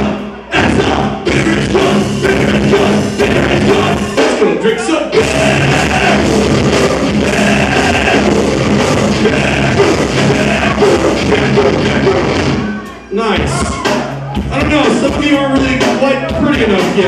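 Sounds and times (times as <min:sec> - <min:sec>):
bass guitar: 0:00.0 - 0:17.0
distorted electric guitar: 0:00.0 - 0:17.0
drum kit: 0:00.0 - 0:17.0.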